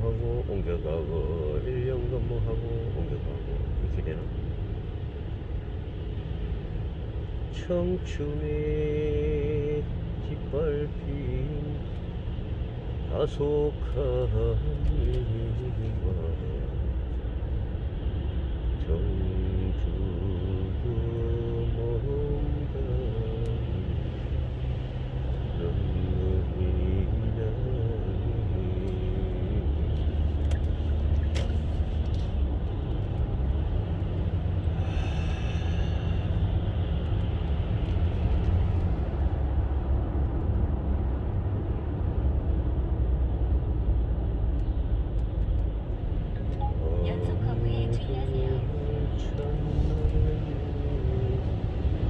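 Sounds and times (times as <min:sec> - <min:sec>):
road and engine rumble in car: 0:00.0 - 0:52.0.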